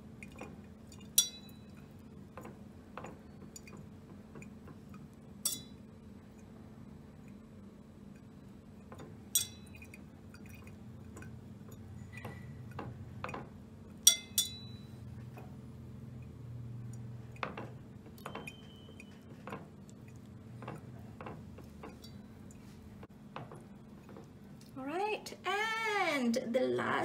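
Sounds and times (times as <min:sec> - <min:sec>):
whisk clinking against metal bowl: 0:14.0 - 0:14.9.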